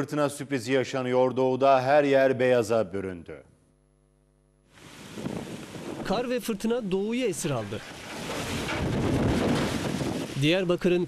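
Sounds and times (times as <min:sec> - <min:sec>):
wind blowing against microphone: 0:04.8 - 0:10.9.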